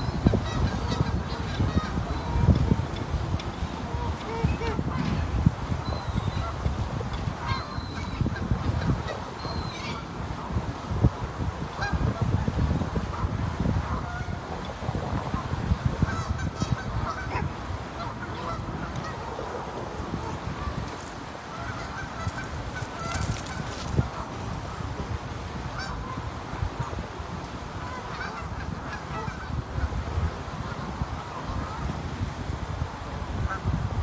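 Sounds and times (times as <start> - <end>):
geese honking: 0.0 - 10.6, 11.7 - 12.5, 13.1 - 27.0, 27.8 - 31.9.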